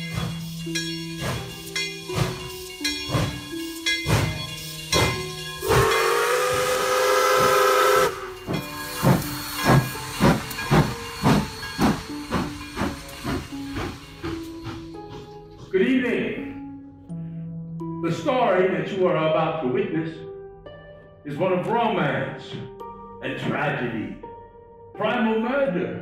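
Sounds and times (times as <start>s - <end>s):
steam train chuffing: 0.0s - 15.7s
steam whistle blast: 5.6s - 8.5s.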